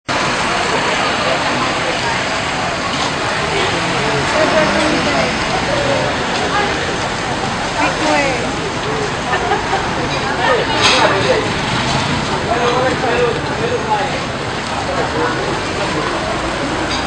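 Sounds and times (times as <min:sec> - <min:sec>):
traffic hubbub: 0:00.0 - 0:17.0
people talking: 0:00.1 - 0:17.0.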